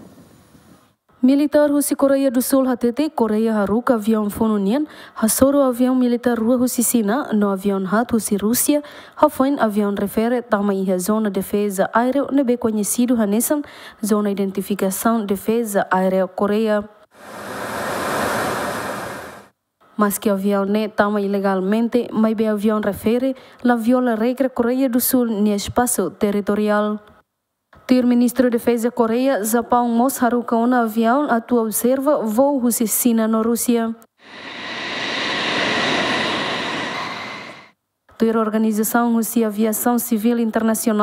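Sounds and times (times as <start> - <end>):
fighter jet rushing: 17.2 - 19.5, 34.2 - 37.7.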